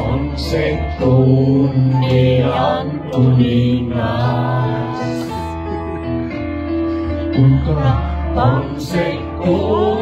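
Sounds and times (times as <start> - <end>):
group singing worship song: 0.0 - 5.7, 7.3 - 10.0
musical accompaniment: 0.0 - 10.0.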